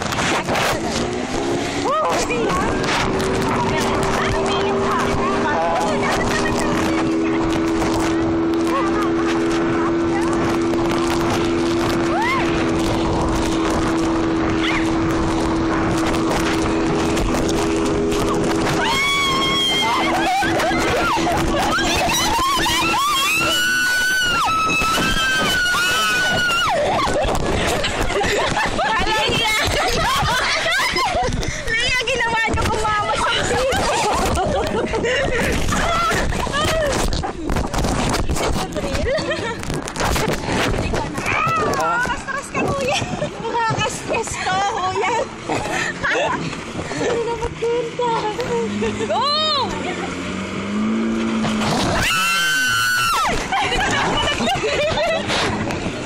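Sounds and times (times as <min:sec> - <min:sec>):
rushing water: 0:00.0 - 0:56.0
speedboat engine droning: 0:00.0 - 0:56.0
wind on microphone: 0:00.0 - 0:56.0
people screaming: 0:12.0 - 0:12.7, 0:18.6 - 0:27.3, 0:51.7 - 0:54.9.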